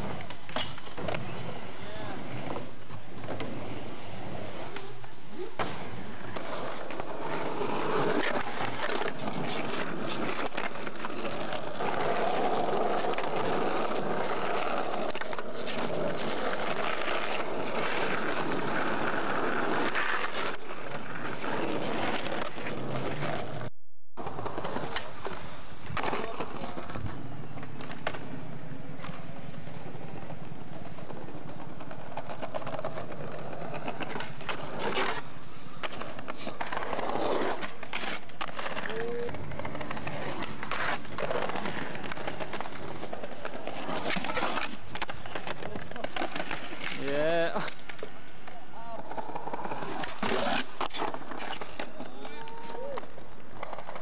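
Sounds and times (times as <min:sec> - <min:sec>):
skateboard clacks: 0:00.0 - 0:03.7, 0:24.2 - 0:54.0
skateboard wheels rolling on stone: 0:00.0 - 0:54.0.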